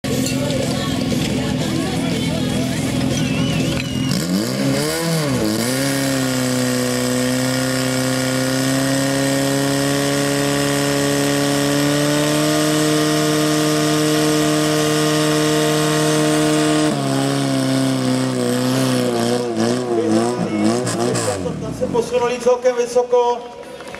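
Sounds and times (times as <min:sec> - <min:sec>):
voices: 0:00.1 - 0:04.3.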